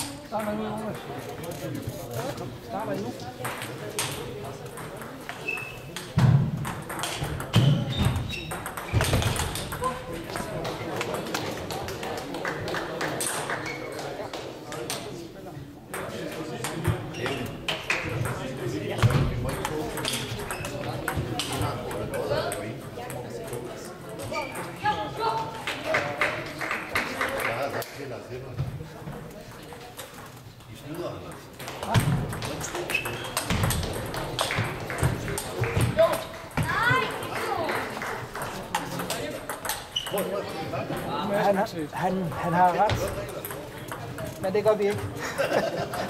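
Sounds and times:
murmur of voices: 0:00.0 - 0:46.0
table tennis balls clicking: 0:03.4 - 0:12.3, 0:19.4 - 0:24.8, 0:31.3 - 0:41.4, 0:42.0 - 0:45.2.

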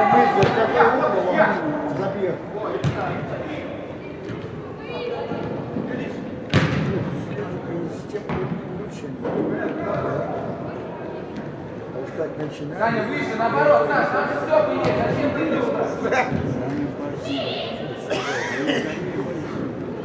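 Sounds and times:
football kicked with echoing thuds: 0:00.4 - 0:00.6, 0:02.8 - 0:03.2, 0:06.5 - 0:07.2.

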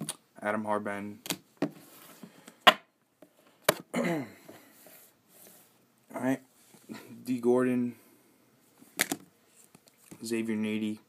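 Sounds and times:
person clearing throat: 0:03.9 - 0:04.5.

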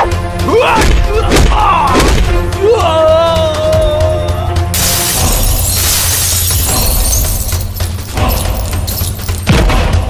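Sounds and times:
low background music: 0:00.0 - 0:10.0
glass shattering: 0:04.8 - 0:09.6.

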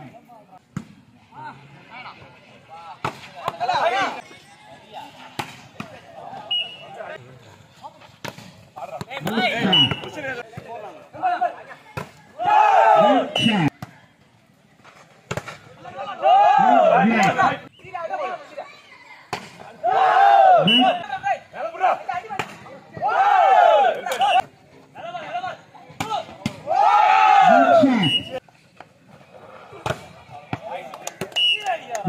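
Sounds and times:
faint crowd voices: 0:00.0 - 0:32.0
people shouting: 0:12.0 - 0:13.7, 0:15.9 - 0:17.6, 0:19.6 - 0:24.4, 0:26.0 - 0:28.4.

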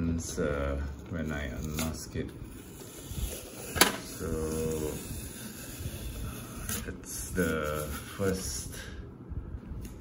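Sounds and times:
man speaking: 0:06.7 - 0:09.0.

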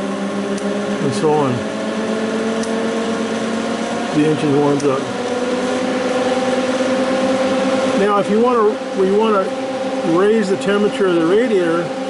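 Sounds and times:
cooling fan humming: 0:00.0 - 0:12.0.

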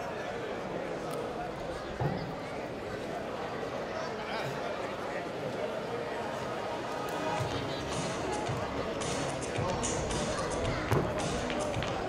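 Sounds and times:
distant public-address voice: 0:00.0 - 0:12.0
music over loudspeakers: 0:07.4 - 0:12.0.

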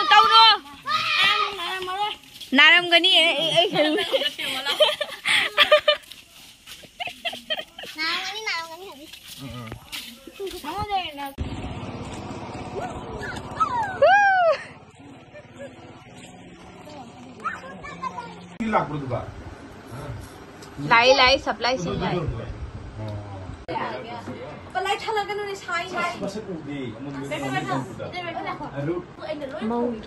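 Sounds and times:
people chatting: 0:07.0 - 0:11.4.

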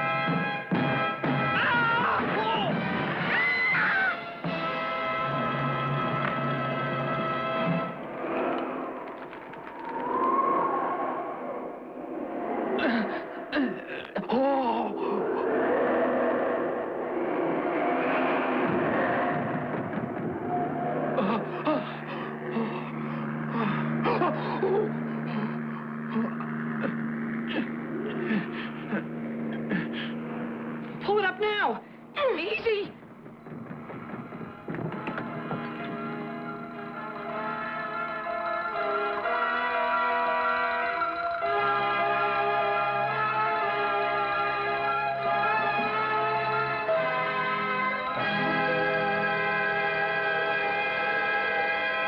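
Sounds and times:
dramatic cartoon music: 0:00.0 - 0:09.0, 0:34.0 - 0:52.0
low drone: 0:04.4 - 0:32.2, 0:32.9 - 0:52.0
wordless vocal sounds: 0:11.4 - 0:19.6
sliding pitch glides: 0:14.9 - 0:31.1.

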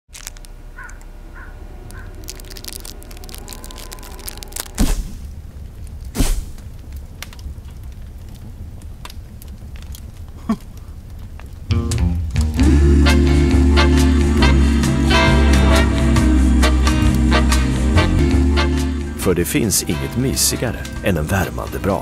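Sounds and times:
wood fire crackling: 0:00.1 - 0:22.0
loud thumps: 0:04.6 - 0:06.8.

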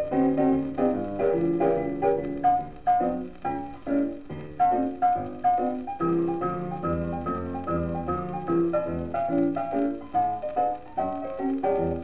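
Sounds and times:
solo jazz piano record: 0:00.0 - 0:12.0.

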